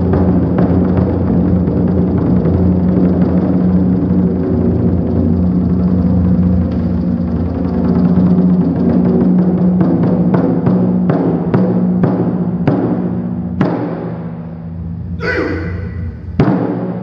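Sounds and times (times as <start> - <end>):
ensemble playing drums: 0.0 - 17.0
sharp drum strikes: 10.7 - 14.4, 15.2 - 17.0.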